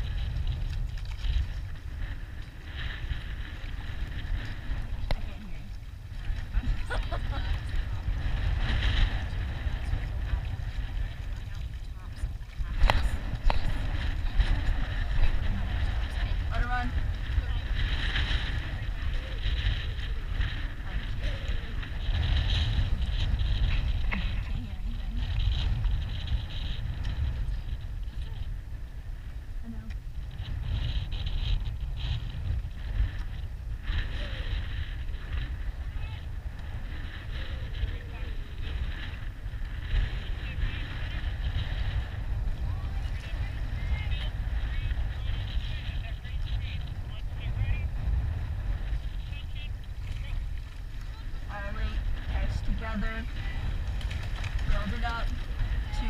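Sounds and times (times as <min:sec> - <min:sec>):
water hiss and oar noise: 0:00.0 - 0:56.0
wind buffeting microphone: 0:00.0 - 0:56.0.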